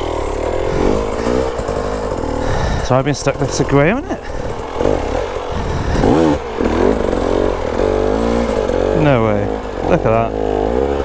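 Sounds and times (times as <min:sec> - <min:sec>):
dirt bike engine idling: 0:00.0 - 0:11.0
dirt bike engine revving: 0:00.0 - 0:11.0.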